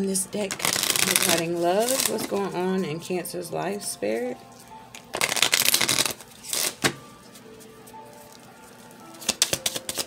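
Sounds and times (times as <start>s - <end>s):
cards being shuffled: 0.5s - 2.4s, 5.0s - 7.7s, 9.2s - 10.0s
cards snapping: 5.2s - 7.0s, 9.2s - 10.0s.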